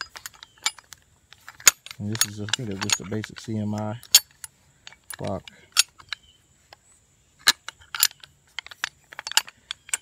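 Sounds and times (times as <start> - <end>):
metal pulley clicking and clinking: 0.0 - 6.3, 7.4 - 10.0.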